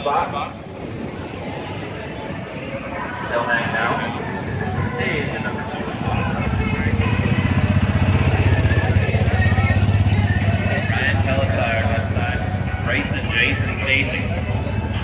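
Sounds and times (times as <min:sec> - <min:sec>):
car engine idling: 0:04.9 - 0:15.0.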